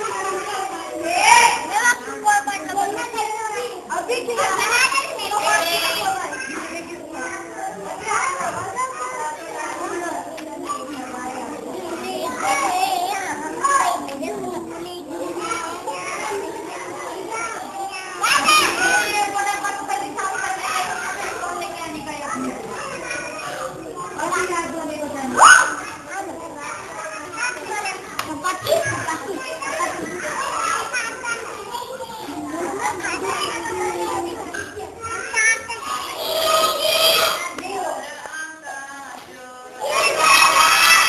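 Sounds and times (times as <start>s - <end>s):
children talking and calling out: 0.0s - 41.0s.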